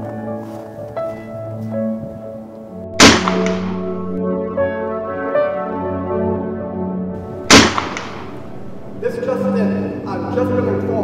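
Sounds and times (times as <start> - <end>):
loud gunshot: 3.0 - 4.1, 7.4 - 9.1.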